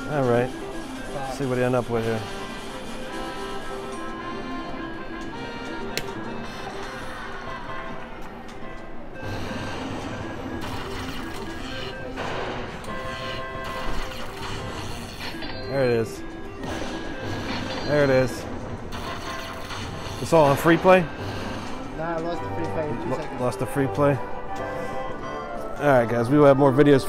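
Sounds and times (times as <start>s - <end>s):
slot machine music and jingles: 0.0s - 27.0s.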